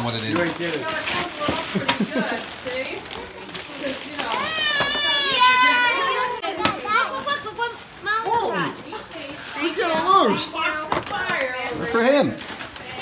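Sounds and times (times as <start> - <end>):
plastic bag crinkling: 0.0 - 13.0
child squealing excitedly: 4.4 - 6.4.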